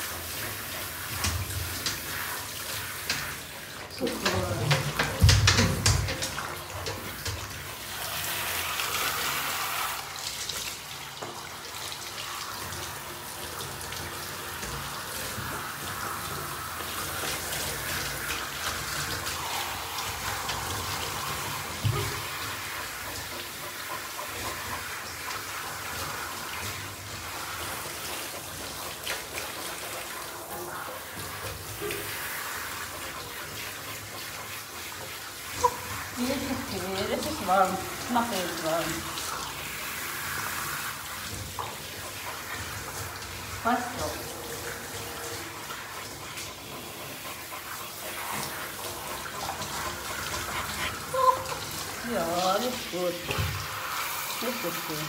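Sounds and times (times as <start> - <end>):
shower water running into bathtub: 0.0 - 55.0.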